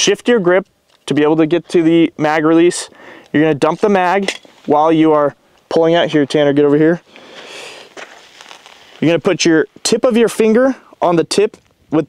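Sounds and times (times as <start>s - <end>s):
clothing and belt gear rustling: 7.0s - 9.9s.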